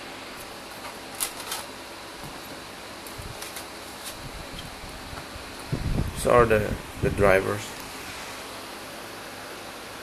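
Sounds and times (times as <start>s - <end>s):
computer fans whooshing: 0.0s - 10.0s.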